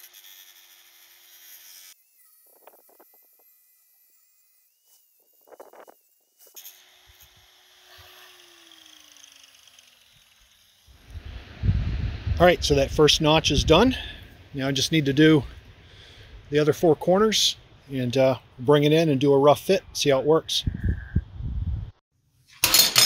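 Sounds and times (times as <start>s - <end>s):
angle grinder whine: 0.0s - 15.7s.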